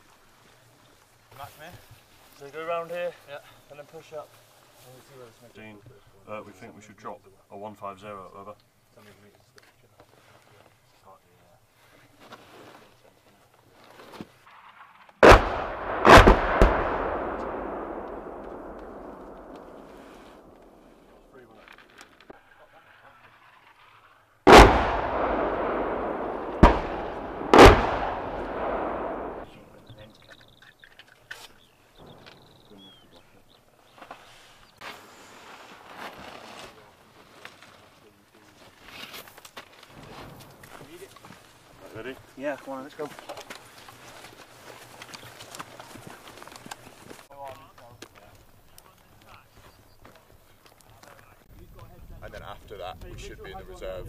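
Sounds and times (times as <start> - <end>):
artillery shells exploding: 14.5 - 21.3, 23.2 - 29.9.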